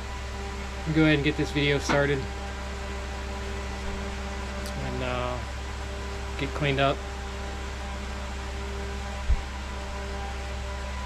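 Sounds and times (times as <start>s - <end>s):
electric fan humming: 0.0s - 11.0s.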